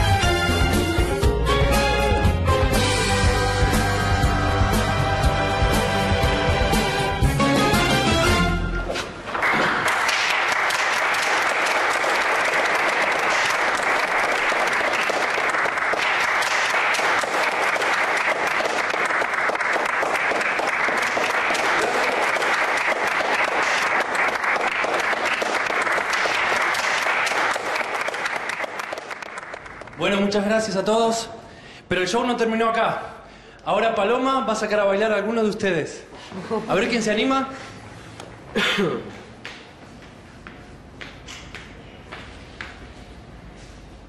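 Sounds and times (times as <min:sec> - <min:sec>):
audience applauding: 0:09.3 - 0:30.3.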